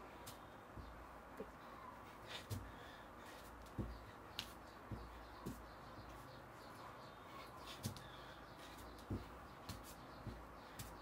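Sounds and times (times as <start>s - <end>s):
bare feet tapping on tiles: 2.3s - 6.3s, 7.7s - 11.0s.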